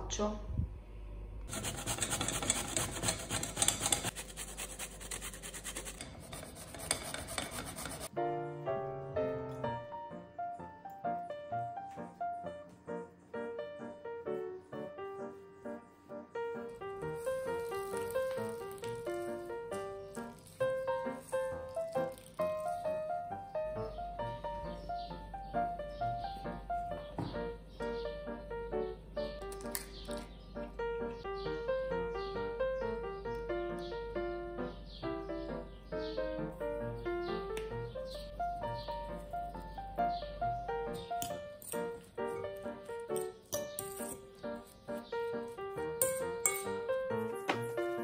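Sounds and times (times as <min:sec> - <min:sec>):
vegetable grating on metal grater: 0:01.5 - 0:08.1
background music plucked melody: 0:08.1 - 0:48.0.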